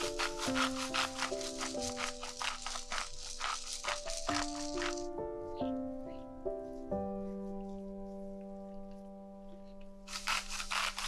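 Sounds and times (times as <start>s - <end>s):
spice grinder rasping: 0.0s - 5.1s, 10.1s - 11.0s
gentle background music: 0.0s - 11.0s.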